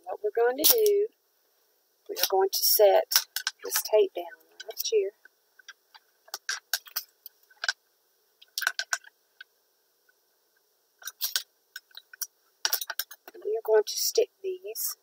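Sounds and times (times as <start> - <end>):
masking tape crackling: 2.0 - 15.0.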